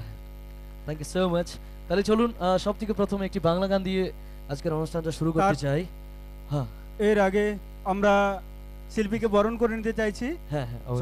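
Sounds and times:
low mains hum: 0.0 - 11.0.

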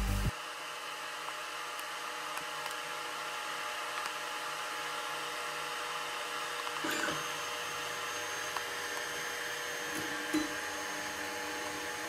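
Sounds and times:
faint motor whine: 0.0 - 12.0
printer fans whirring: 1.7 - 12.0.

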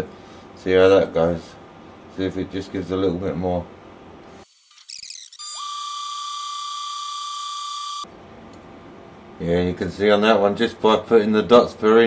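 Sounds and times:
laser cutter high-pitched tone: 4.5 - 8.1.

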